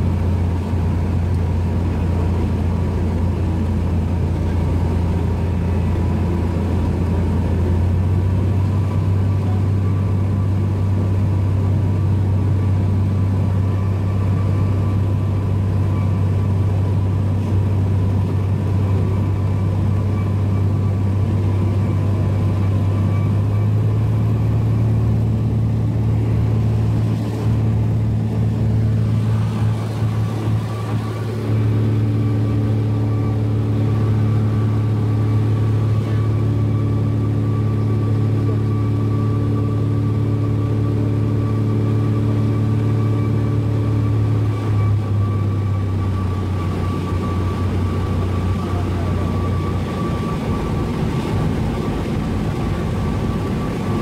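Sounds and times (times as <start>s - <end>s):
aircraft engine and propeller droning: 0.0s - 54.0s.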